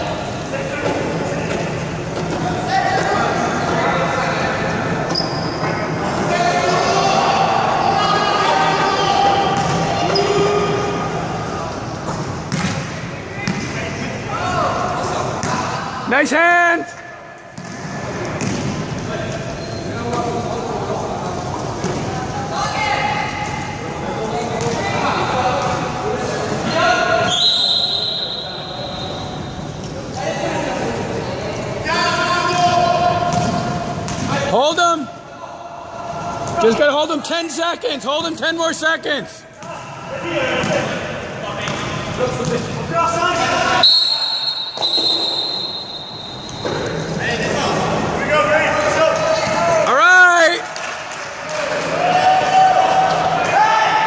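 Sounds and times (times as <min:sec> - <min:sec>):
sharp squeaks: 0:05.1 - 0:05.7, 0:19.6 - 0:20.0
basketball bouncing on court floor: 0:12.5 - 0:13.7, 0:17.6 - 0:18.8, 0:33.3 - 0:34.3.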